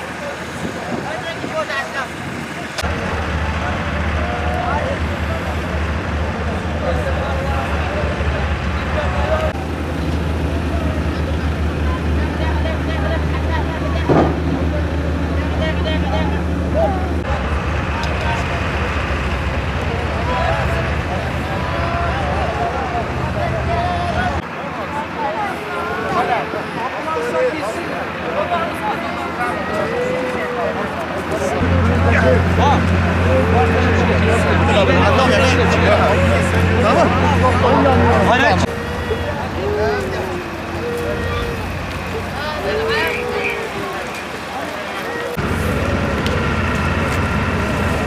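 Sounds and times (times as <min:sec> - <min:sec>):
distant people talking and calling: 0:00.0 - 0:48.0
rumble of vehicles: 0:00.0 - 0:48.0
people crying and wailing: 0:02.4 - 0:17.4, 0:20.2 - 0:46.6.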